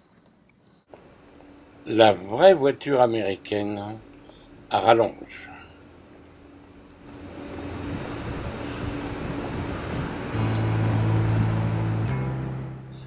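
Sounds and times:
steady low hum: 0.0 - 13.0
traffic rushing noise: 3.9 - 13.0.

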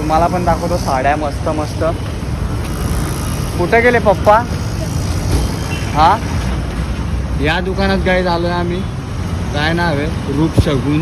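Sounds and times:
road traffic rumble: 0.0 - 11.0
vehicles passing close by: 0.0 - 11.0.

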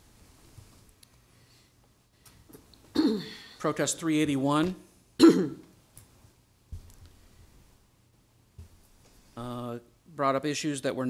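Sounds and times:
man clearing throat: 3.0 - 3.5, 5.2 - 5.7.

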